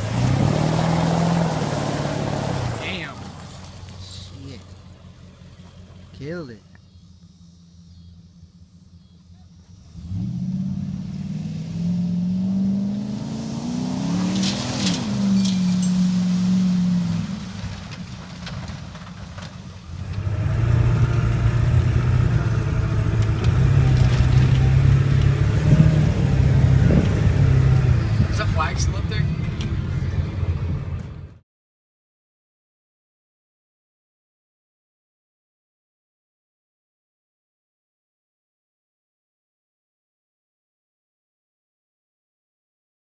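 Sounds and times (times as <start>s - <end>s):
pickup truck engines revving: 0.0s - 31.3s
engine under load inside cab: 4.6s - 10.6s, 17.6s - 28.4s.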